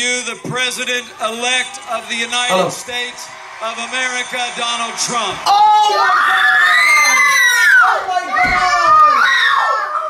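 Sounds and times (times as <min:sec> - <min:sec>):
children yelling and shrieking: 0:05.5 - 0:10.0.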